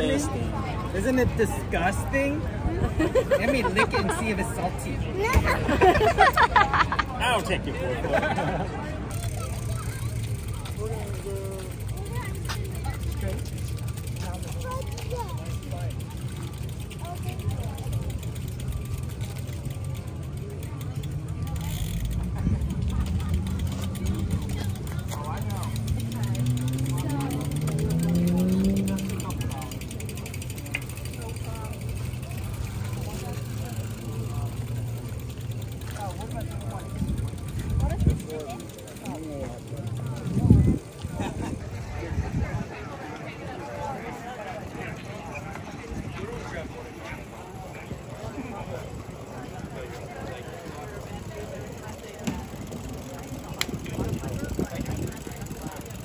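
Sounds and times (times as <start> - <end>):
distant voices: 4.6 - 56.0.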